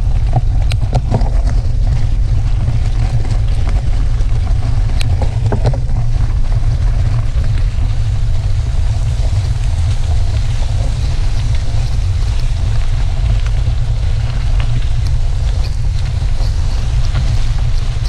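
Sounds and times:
bicycle tyres rolling on gravel: 0.0 - 18.0
gravel clicks and rattling gear: 0.0 - 18.0
wind on microphone: 0.0 - 18.0.

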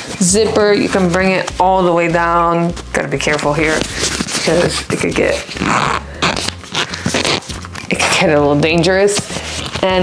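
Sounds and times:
metal zipper rasping: 0.0 - 1.7, 2.7 - 10.0
fabric rustling: 0.0 - 10.0.

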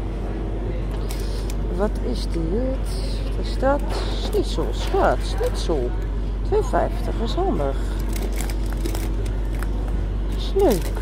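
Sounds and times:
refrigeration hum: 0.0 - 11.0.

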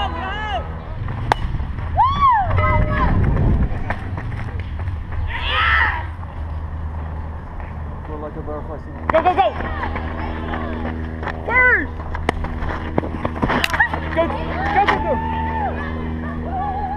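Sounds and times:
players shouting: 0.0 - 0.8, 5.2 - 6.2, 9.1 - 11.9, 13.6 - 16.9
low rumble: 0.0 - 16.9
bat hitting ball: 1.1 - 1.6.

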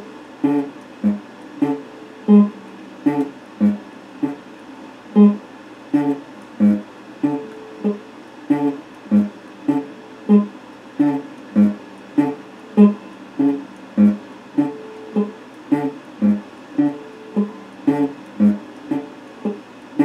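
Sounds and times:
electric guitar picking: 0.0 - 4.4, 5.2 - 5.4, 6.0 - 19.6.

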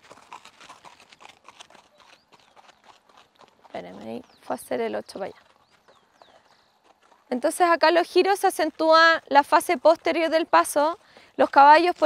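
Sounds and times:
horse hoofbeats on gravel: 0.0 - 12.0.

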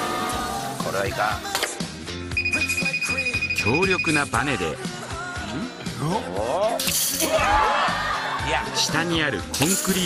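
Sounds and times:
background music: 0.0 - 10.0
high electronic warning beep: 2.3 - 4.7.

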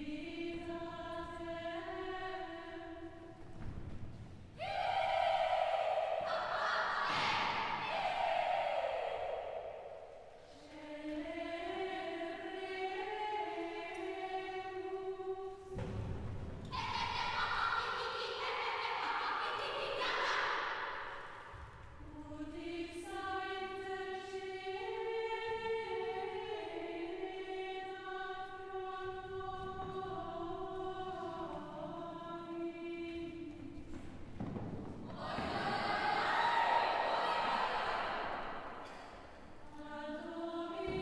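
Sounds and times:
girls singing high note: 4.6 - 15.7, 16.7 - 33.4, 35.1 - 41.0.

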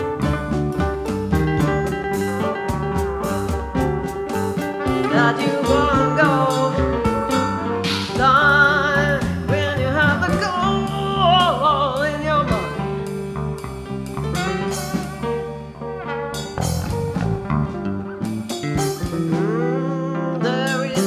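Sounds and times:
acoustic guitar: 0.0 - 21.0
electric bass line: 0.0 - 21.0
wavering lead melody: 0.0 - 21.0.

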